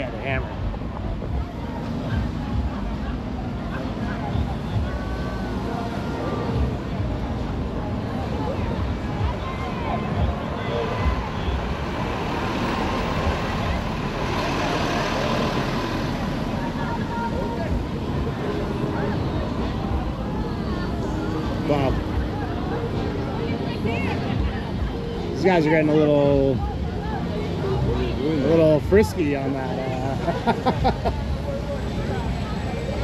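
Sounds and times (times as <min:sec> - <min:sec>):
road traffic passing: 0:00.0 - 0:33.0.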